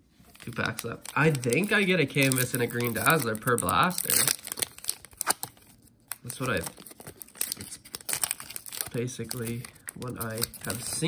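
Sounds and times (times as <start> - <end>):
foil wrapper tearing and crinkling: 0.3 - 11.0.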